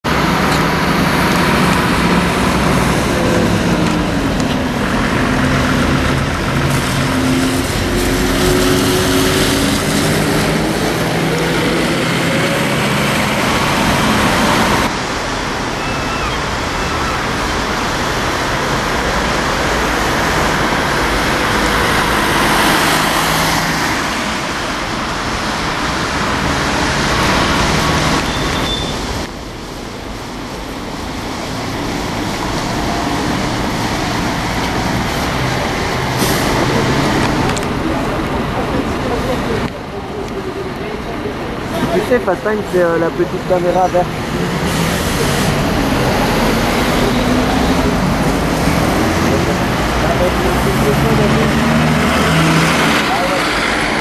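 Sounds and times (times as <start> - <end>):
bus engine accelerating: 0.0 - 54.0
cars passing: 0.0 - 54.0.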